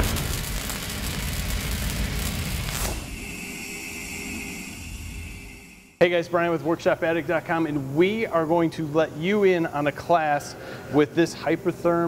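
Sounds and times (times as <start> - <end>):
low rumbling boom: 0.0 - 3.2
low hum: 0.0 - 7.6
brief swoosh: 2.5 - 6.0
thin high tone: 2.8 - 6.7.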